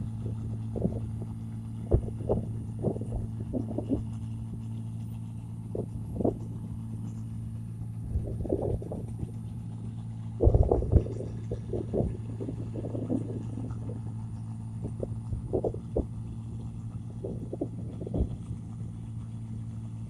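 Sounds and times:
wind buffeting microphone: 0:00.0 - 0:04.7, 0:05.7 - 0:06.8, 0:08.0 - 0:09.6, 0:10.3 - 0:18.8
combine harvester engine droning: 0:00.0 - 0:20.0.

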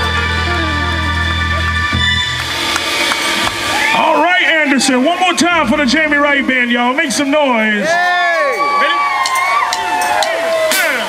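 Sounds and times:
live band holding a chord: 0:00.0 - 0:08.9
man speaking over loudspeaker: 0:03.9 - 0:09.1.

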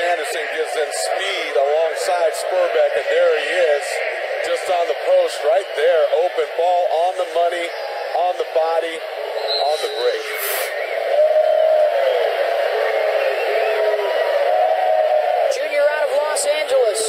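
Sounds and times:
crowd sound: 0:00.0 - 0:17.0
tinny television voices: 0:00.0 - 0:17.0.

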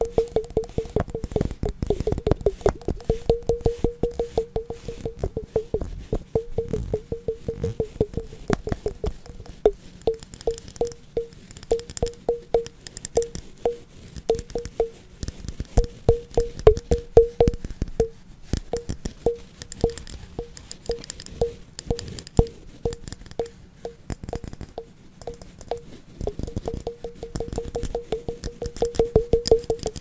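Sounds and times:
fast tapping on hollow object: 0:00.0 - 0:30.0
crisp scratchy sounds: 0:04.7 - 0:10.8.

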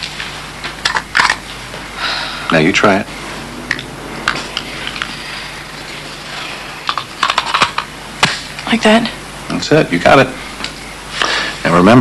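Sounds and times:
low background hum: 0:00.0 - 0:12.0.

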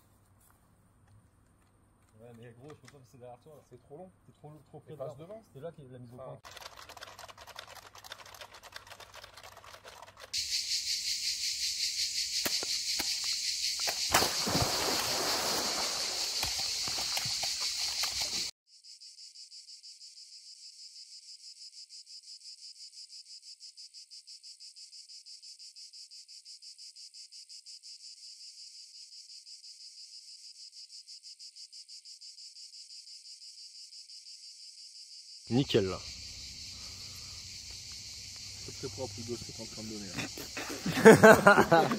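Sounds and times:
cicadas buzzing: 0:06.4 - 0:41.9.

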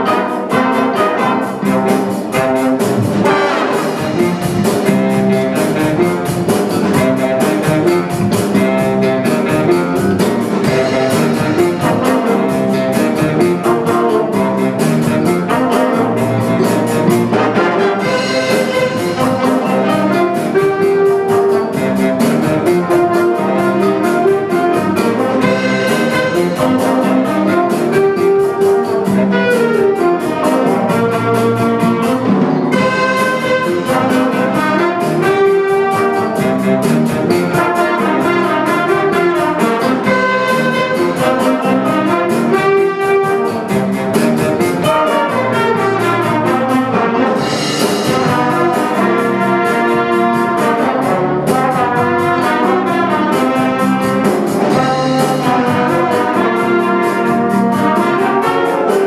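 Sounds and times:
drum cymbals keeping beat: 0:00.0 - 0:59.0
jazz big band playing swing: 0:00.0 - 0:59.0
trumpets: 0:00.0 - 0:59.0.

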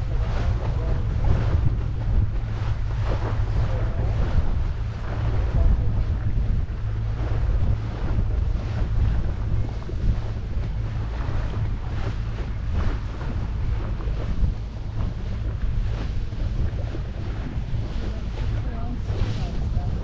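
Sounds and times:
motorboat engine drone: 0:00.0 - 0:20.0
water washing against hull: 0:00.0 - 0:20.0
wind buffeting microphone: 0:00.0 - 0:20.0.

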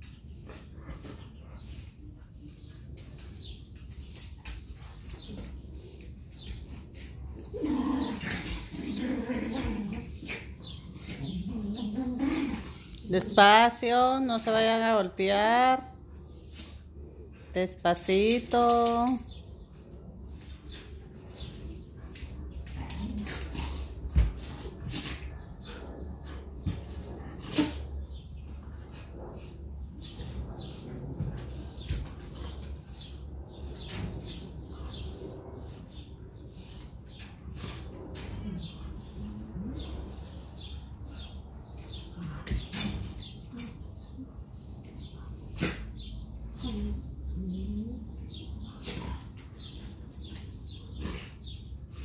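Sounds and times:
low dog vocalizations: 0:45.0 - 0:49.8.

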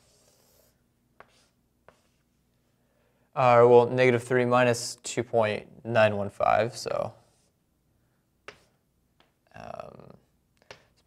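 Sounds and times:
pen scratching: 0:00.0 - 0:02.2.

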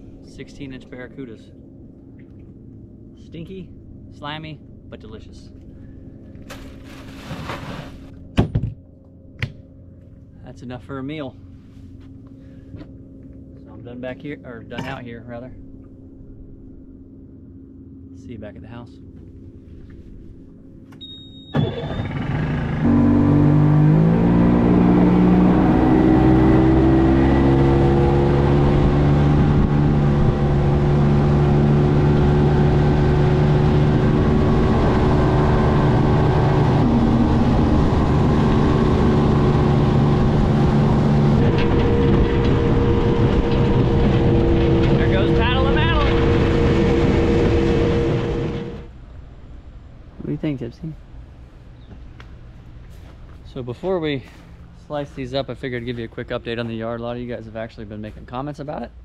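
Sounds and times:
outboard motor running: 0:11.4 - 0:18.2, 0:19.0 - 0:48.9.

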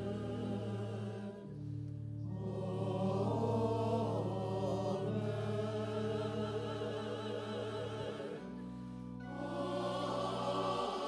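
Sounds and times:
choir singing: 0:00.0 - 0:01.6, 0:02.2 - 0:11.0
organ chords: 0:00.0 - 0:11.0.

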